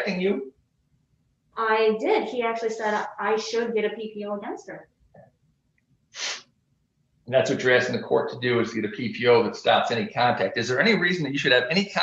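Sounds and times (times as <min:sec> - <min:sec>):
person sniffing or snorting: 0:06.2 - 0:06.4.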